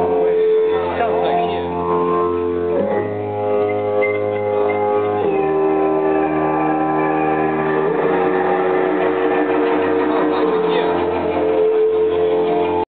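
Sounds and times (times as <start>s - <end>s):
band playing droning chords: 0.0s - 12.9s.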